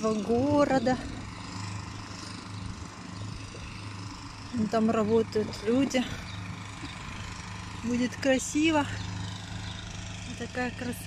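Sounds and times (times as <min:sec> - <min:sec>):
distant engine running: 0:00.0 - 0:11.0
open-air background noise: 0:00.0 - 0:11.0.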